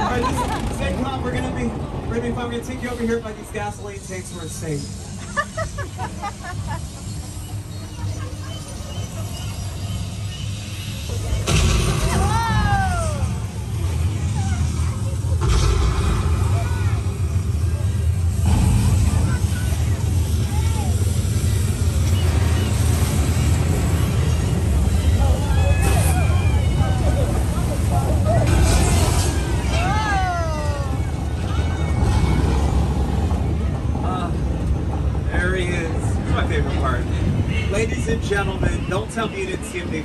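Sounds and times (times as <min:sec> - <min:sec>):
passenger voices: 0:00.0 - 0:40.0
tram engine rumbling: 0:00.0 - 0:40.0.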